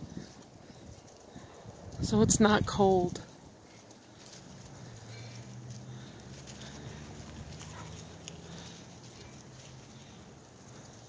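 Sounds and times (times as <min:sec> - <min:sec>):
goats' hooves clicking: 0:00.0 - 0:11.0
footsteps: 0:03.2 - 0:11.0.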